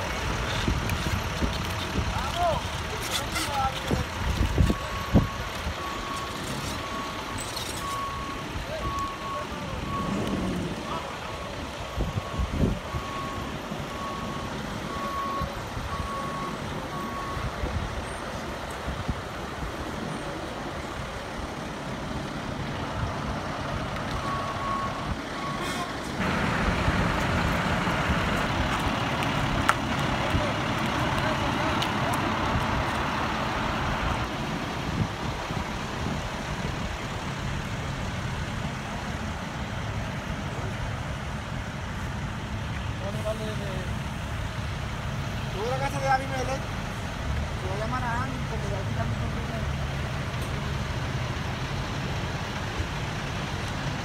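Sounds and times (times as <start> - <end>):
loud engine rumble: 0.0 - 54.0
reversing alarm beeping: 4.7 - 10.4, 11.9 - 17.5, 24.2 - 25.7
heavy truck engine idling: 19.6 - 39.3.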